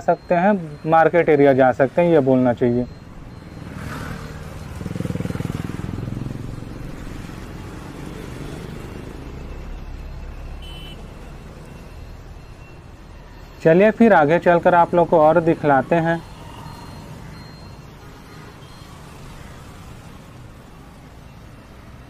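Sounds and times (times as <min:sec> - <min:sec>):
low hum of traffic: 0:00.0 - 0:22.0
motorcycle engine passing: 0:03.5 - 0:09.2.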